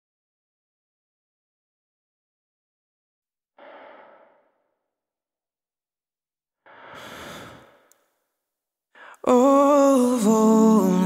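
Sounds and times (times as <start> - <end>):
person sighing breath: 6.7 - 7.9, 9.0 - 9.3.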